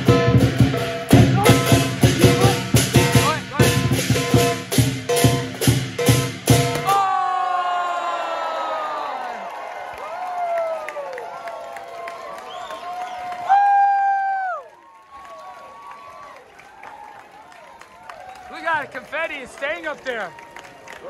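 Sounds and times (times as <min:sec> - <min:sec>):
rapid drum strikes: 0:00.0 - 0:07.0
crowd cheering: 0:06.7 - 0:21.0
long falling whoops: 0:06.8 - 0:16.3.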